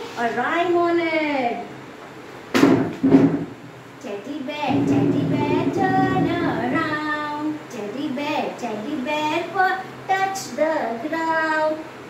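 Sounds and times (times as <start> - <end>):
knocks on a desk: 2.6 - 3.5.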